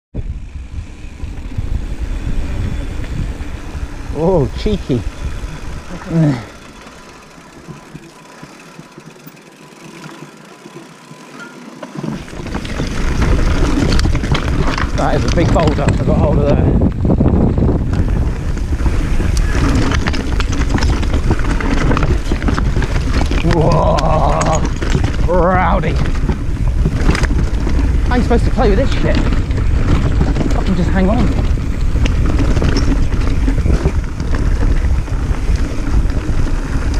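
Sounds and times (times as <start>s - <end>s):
wind on microphone: 0.1s - 6.8s, 12.1s - 36.9s
bike tyres on asphalt: 0.1s - 36.9s.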